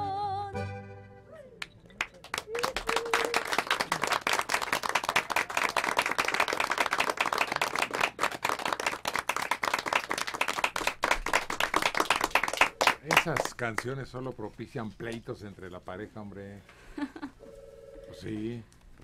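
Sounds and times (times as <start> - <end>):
people clapping: 1.6 - 14.0.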